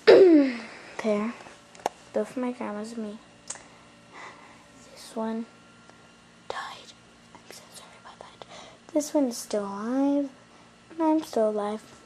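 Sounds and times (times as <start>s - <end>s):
girl whispering: 6.5s - 8.5s.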